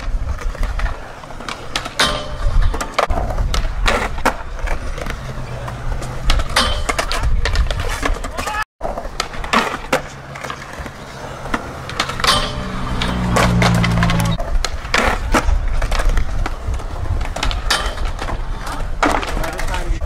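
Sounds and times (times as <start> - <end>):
skateboard clacks and pops: 0.0 - 20.0
skateboard wheels rolling: 0.0 - 20.0
skateboard grinding metal rail: 0.4 - 16.2, 17.1 - 19.8.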